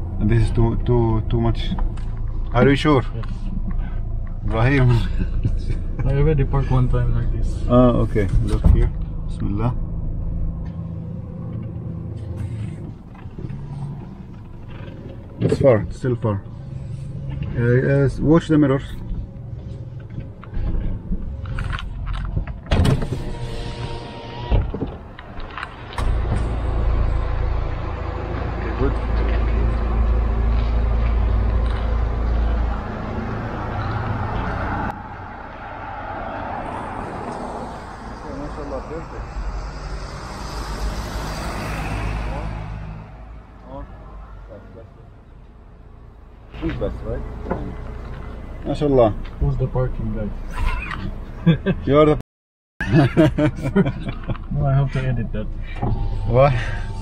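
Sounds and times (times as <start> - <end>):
car engine humming: 0.0 - 52.2, 52.9 - 57.0.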